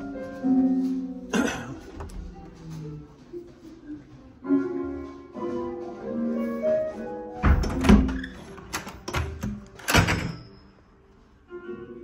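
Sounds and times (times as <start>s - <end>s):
door banging shut: 7.4s - 10.4s
door latch clunking: 7.4s - 10.4s.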